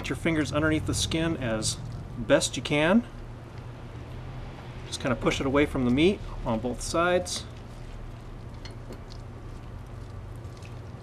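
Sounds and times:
wet squishing of raw meat: 0:00.0 - 0:04.8, 0:05.4 - 0:11.0
low background hum: 0:00.0 - 0:11.0.

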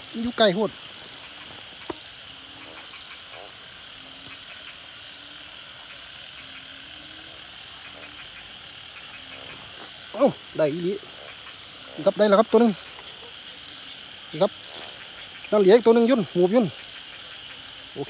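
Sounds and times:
frogs croaking: 0:00.0 - 0:18.0
insect chorus: 0:00.0 - 0:18.0.

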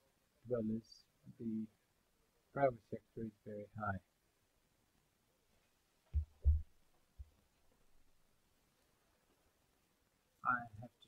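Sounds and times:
dull low thumps: 0:06.2 - 0:07.3.

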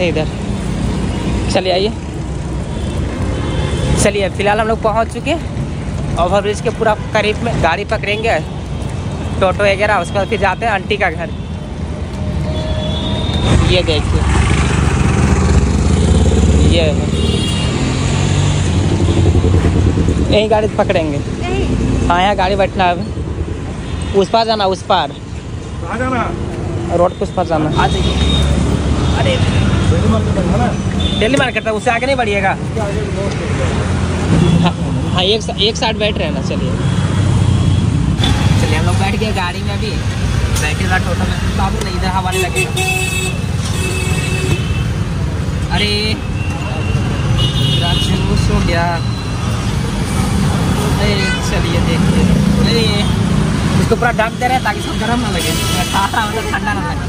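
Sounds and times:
passing vehicles rumble: 0:00.0 - 0:57.0
road traffic hum: 0:00.0 - 0:57.0.

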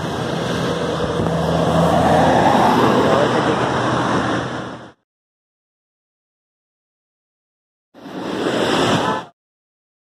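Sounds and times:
engine hum: 0:00.0 - 0:05.0
vehicle passing: 0:00.0 - 0:05.0.

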